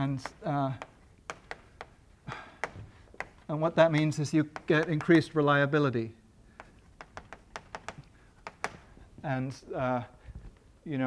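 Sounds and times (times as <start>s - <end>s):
chalk tapping on a blackboard: 0.0s - 2.0s, 2.6s - 5.4s, 6.5s - 9.0s.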